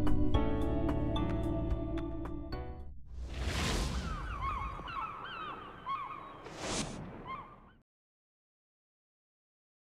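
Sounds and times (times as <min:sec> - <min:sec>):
whoosh: 0:03.0 - 0:04.8
gulls crying: 0:03.8 - 0:07.8.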